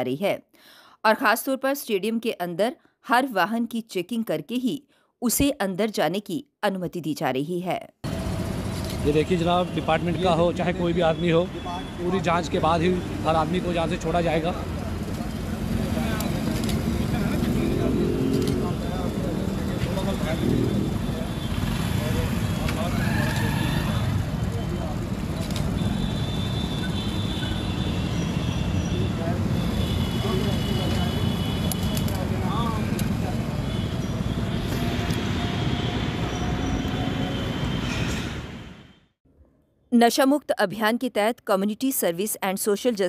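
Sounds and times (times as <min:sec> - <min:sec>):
motorcycles passing: 0:08.1 - 0:37.8.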